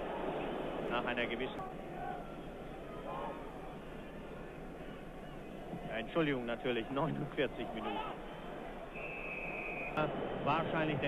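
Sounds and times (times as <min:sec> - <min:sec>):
muffled stadium crowd murmur: 0:00.0 - 0:11.0.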